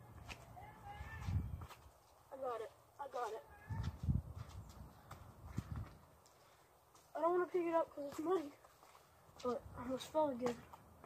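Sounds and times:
footsteps on muddy ground: 0:00.0 - 0:11.0
boy's high-pitched exclamations: 0:03.3 - 0:04.0.

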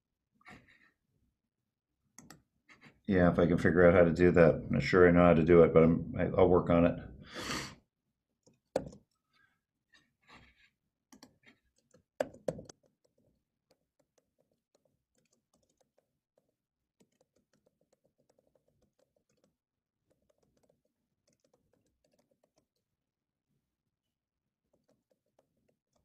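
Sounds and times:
keyboard typing: 0:02.2 - 0:02.9, 0:08.4 - 0:09.2, 0:10.3 - 0:22.9, 0:24.7 - 0:26.0.

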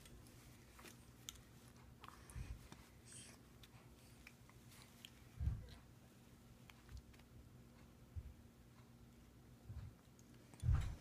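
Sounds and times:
soft low thump: 0:10.6 - 0:11.0.

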